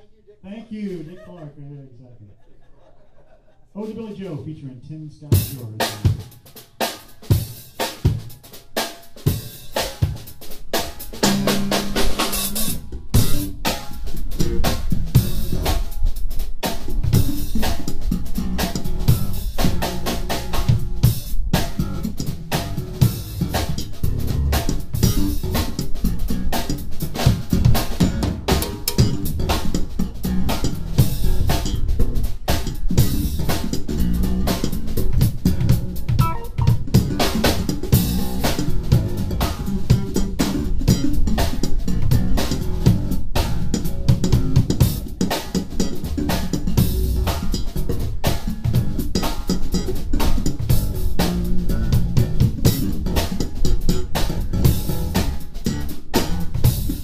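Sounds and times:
drum kit groove: 0:03.8 - 0:57.0
jazz fusion band playing: 0:05.3 - 0:57.0
electric bass: 0:09.2 - 0:57.0.

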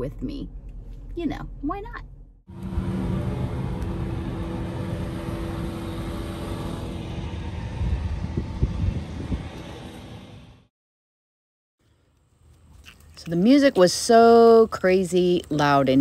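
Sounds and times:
low rumble: 0:00.0 - 0:10.7
steady mechanical hum: 0:02.5 - 0:10.7.

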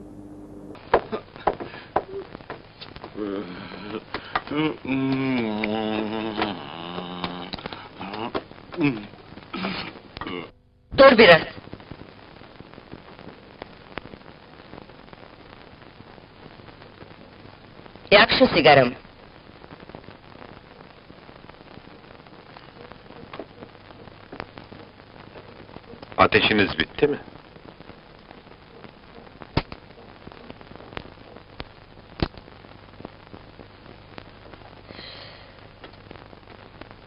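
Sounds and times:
film soundtrack hiss and crackle: 0:00.0 - 0:37.0
man groaning: 0:03.2 - 0:10.5.

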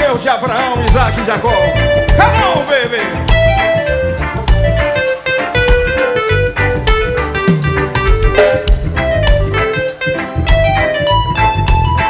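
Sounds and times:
bass and drums beat: 0:00.0 - 0:12.0
guitar single-note melody: 0:00.7 - 0:12.0.

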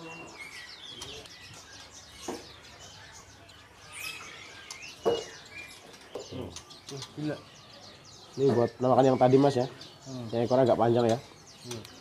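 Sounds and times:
songbirds chirping: 0:00.0 - 0:12.0.

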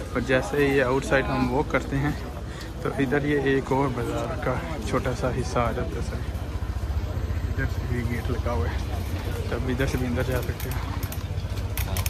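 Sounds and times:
motor scooter engine rumble: 0:00.0 - 0:12.0
street voices: 0:00.0 - 0:12.0.

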